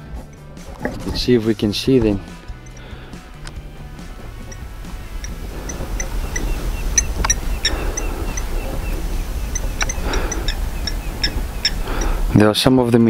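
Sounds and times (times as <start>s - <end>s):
steady low rumble: 0.0s - 12.4s
birds chirping: 0.0s - 12.7s.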